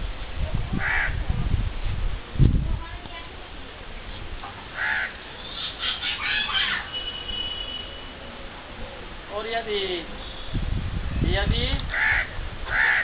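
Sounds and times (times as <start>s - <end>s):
quick bird calls: 4.8s - 7.2s, 11.9s - 13.0s
harsh bird call: 4.8s - 7.9s, 11.9s - 13.0s.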